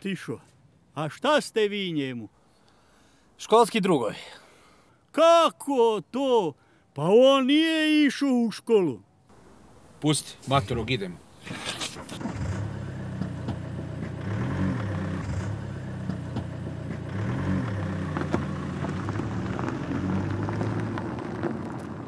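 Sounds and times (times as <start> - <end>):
car engine pulling away: 11.4 - 22.0.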